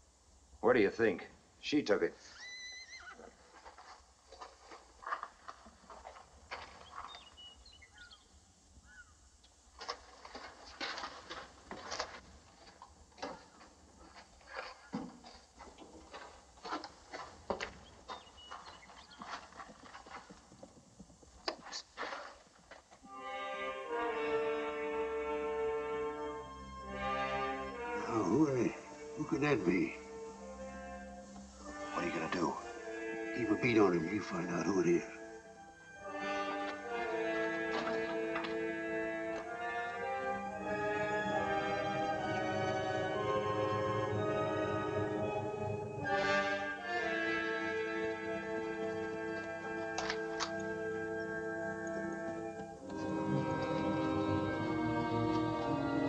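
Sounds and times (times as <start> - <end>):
horse whinny: 2.2 - 3.4
hoofbeats and knocks: 3.2 - 7.4, 9.8 - 23.1, 36.3 - 39.6, 47.6 - 56.0
film score with held chords: 23.1 - 56.0.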